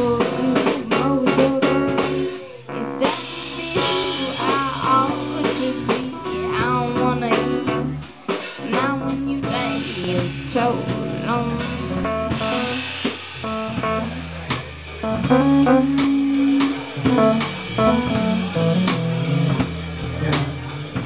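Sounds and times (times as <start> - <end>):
guitar: 0.0 - 21.0
live band playing: 0.0 - 21.0.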